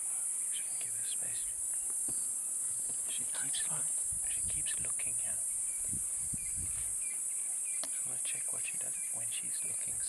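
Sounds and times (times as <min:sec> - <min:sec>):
crickets chirping: 0:00.0 - 0:10.0.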